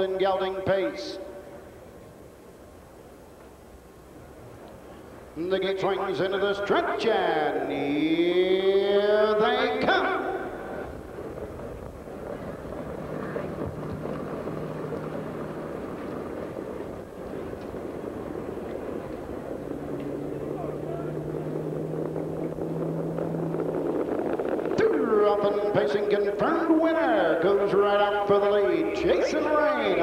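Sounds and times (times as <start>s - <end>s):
crowd murmur: 10.2s - 24.1s
car engine running: 10.6s - 25.8s.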